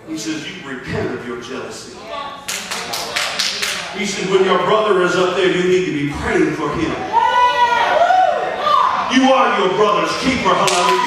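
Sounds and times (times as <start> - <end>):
hand claps: 2.5 - 3.9, 10.6 - 11.0.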